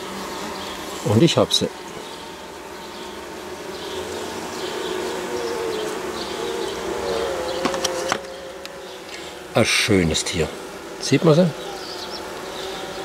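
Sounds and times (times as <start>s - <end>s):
honeybees buzzing: 0.0s - 13.0s.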